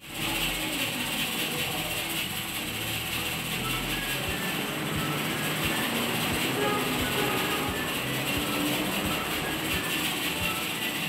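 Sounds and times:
loud steady hissing: 0.0s - 11.0s.

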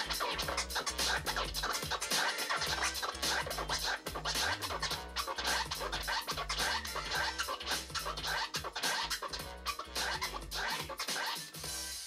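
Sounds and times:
beat with bass line: 0.0s - 12.0s
turntable scratching: 0.0s - 12.0s.

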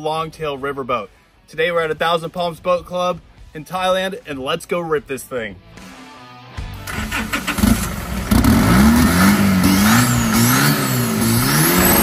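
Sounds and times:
boat diesel engine starting and revving: 6.8s - 12.0s.

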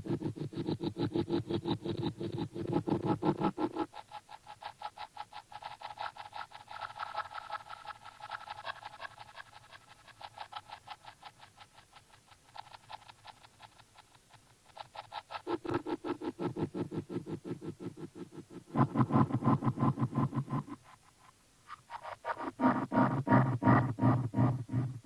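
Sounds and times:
rapidly pulsing synth: 21.9s - 25.0s.

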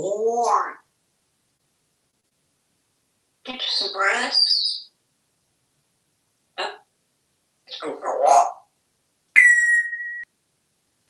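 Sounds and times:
parrot speech-like mumble: 7.7s - 8.6s
parrot squawk: 9.4s - 10.1s
parrot high whistle: 9.4s - 10.3s.

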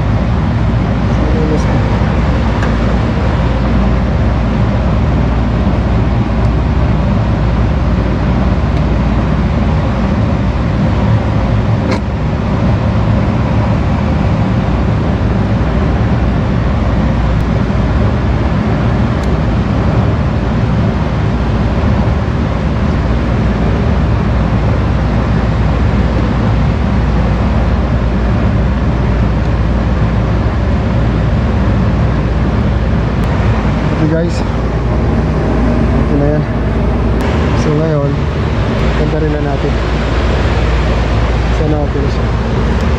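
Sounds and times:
air-conditioning machinery drone: 0.0s - 42.9s.

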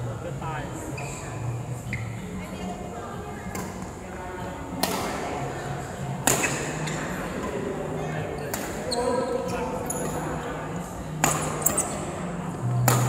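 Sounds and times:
people talking: 0.0s - 13.0s
racket hitting shuttlecock: 4.8s - 5.2s, 6.2s - 7.5s, 8.5s - 10.2s, 11.1s - 12.1s, 12.8s - 13.0s.

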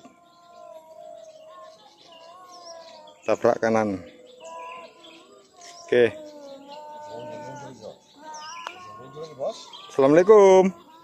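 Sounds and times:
birds chirping and calling: 0.0s - 11.0s.

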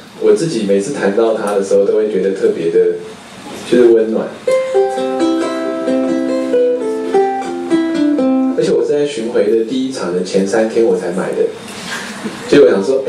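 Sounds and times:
ukulele plucked melody: 4.4s - 8.6s.

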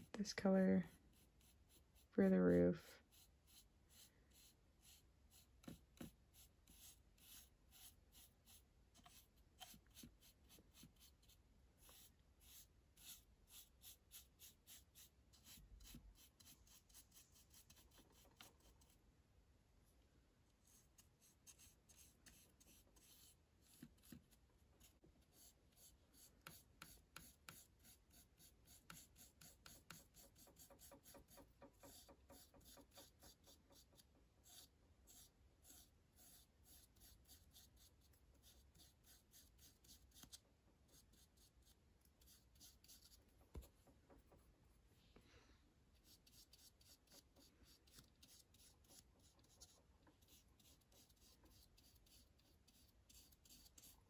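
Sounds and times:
paintbrush strokes on wood: 0.9s - 19.0s.

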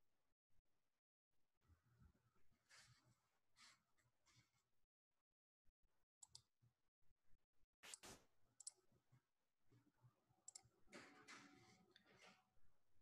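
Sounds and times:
computer mouse clicks: 6.2s - 6.5s, 10.5s - 10.7s.

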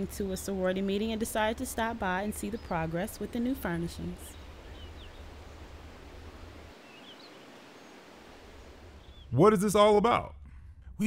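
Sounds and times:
bird chirps: 2.0s - 5.7s, 6.7s - 8.0s, 9.0s - 9.4s.

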